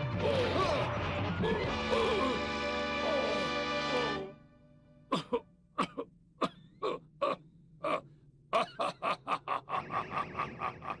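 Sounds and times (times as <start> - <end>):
breathy voice bursts: 0.1 - 4.0.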